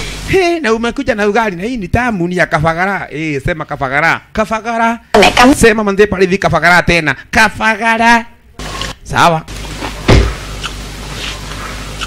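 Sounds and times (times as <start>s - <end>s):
low thump: 10.1s - 10.4s.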